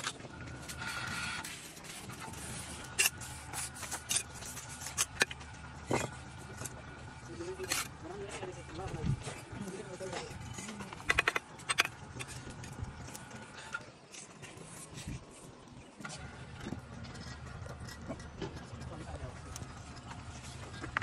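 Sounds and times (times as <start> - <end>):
trowel scraping mortar: 0.7 - 6.2.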